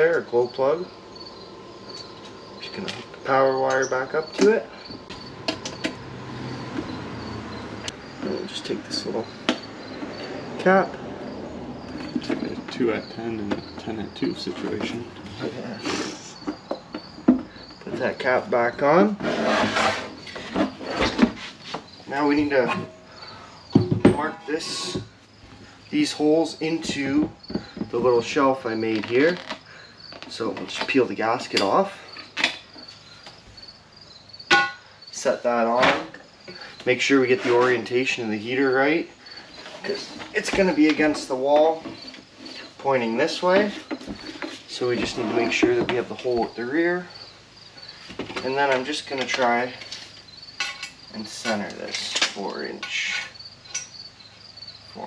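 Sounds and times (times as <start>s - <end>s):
crickets chirping: 0.0s - 55.0s.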